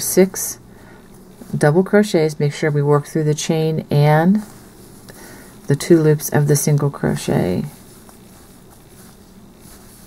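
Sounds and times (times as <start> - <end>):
low steady hiss: 0.0 - 10.0.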